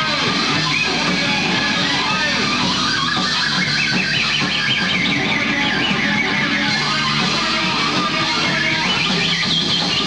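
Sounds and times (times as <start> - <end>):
distorted electric guitar: 0.0 - 10.0
drums: 0.0 - 10.0
high squealing line: 0.2 - 10.0.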